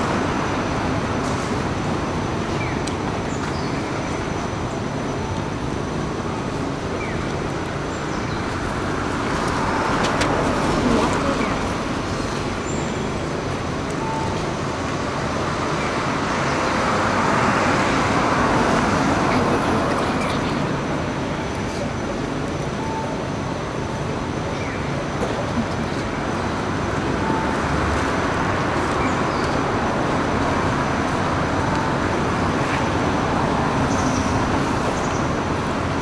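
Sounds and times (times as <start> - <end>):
street traffic noise: 0.0 - 36.0
vehicles passing: 0.0 - 36.0.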